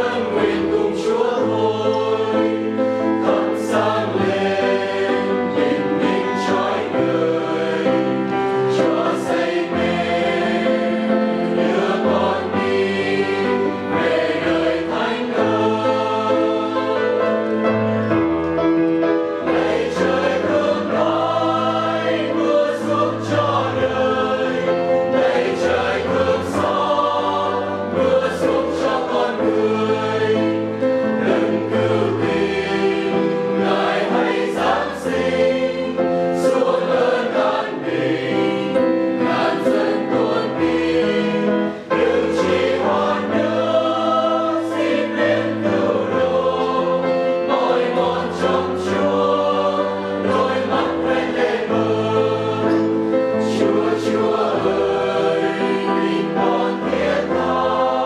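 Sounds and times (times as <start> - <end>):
mixed choir singing a hymn: 0.0 - 58.0.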